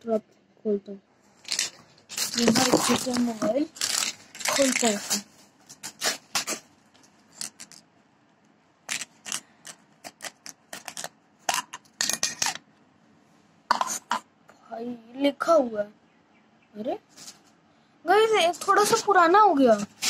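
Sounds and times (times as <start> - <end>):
package clicking and rustling: 1.4 - 7.8, 8.9 - 11.8.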